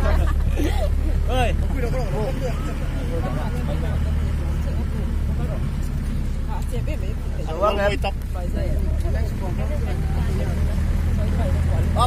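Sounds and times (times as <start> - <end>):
pickup engine and road drone: 0.0 - 12.0.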